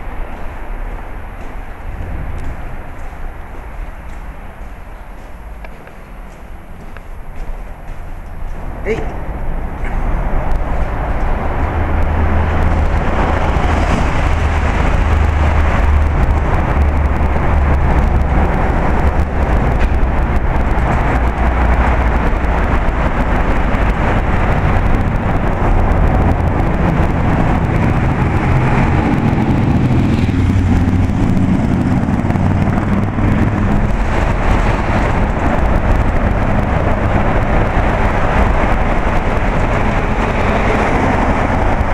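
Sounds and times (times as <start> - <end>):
cars passing on a bridge: 0.0 - 41.9
heavy low rumble: 0.0 - 41.9.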